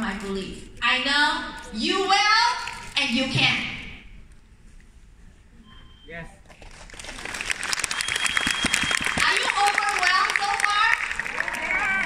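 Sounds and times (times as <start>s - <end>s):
audience clapping: 6.6s - 12.0s.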